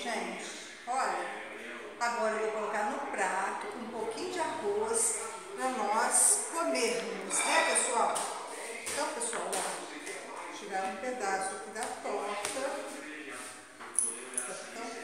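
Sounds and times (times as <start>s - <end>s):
woman talking: 0.0s - 1.2s, 2.0s - 8.3s, 8.9s - 12.9s.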